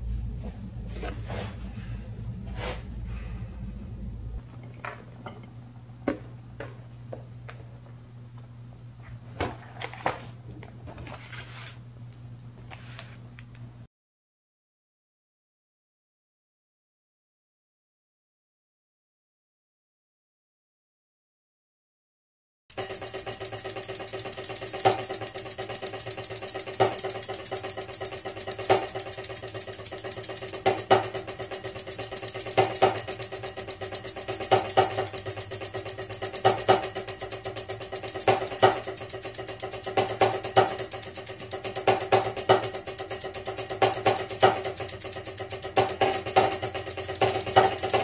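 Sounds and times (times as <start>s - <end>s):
percussion ensemble music: 22.7s - 48.0s.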